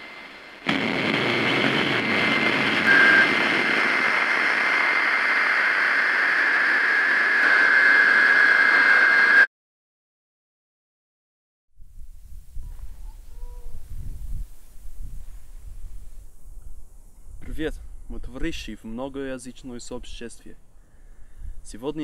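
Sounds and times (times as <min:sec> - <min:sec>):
loud rushing noise drone: 0:00.0 - 0:09.5
lower whine: 0:00.0 - 0:09.5
thin high whine: 0:00.0 - 0:09.5.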